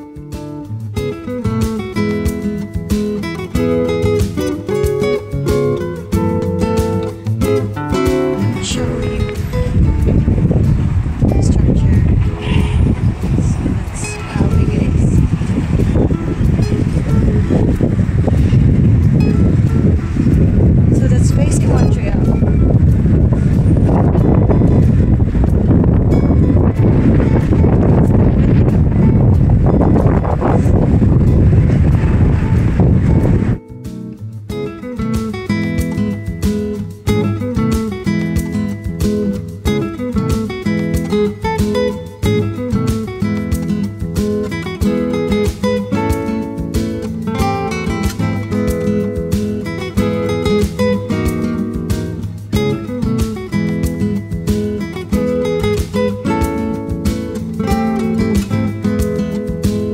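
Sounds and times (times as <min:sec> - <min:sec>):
strummed acoustic guitar music: 0:00.0 - 0:59.9
wind rumbling on microphone: 0:00.7 - 0:59.9.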